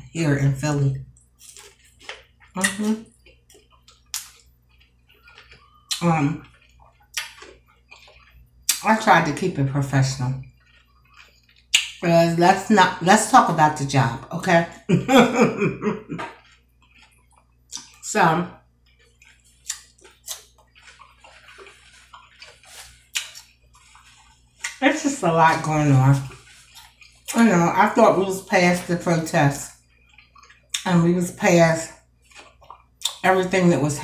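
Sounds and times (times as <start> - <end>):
faint chewing: 1.1 - 12.0, 16.0 - 31.1, 31.9 - 33.7.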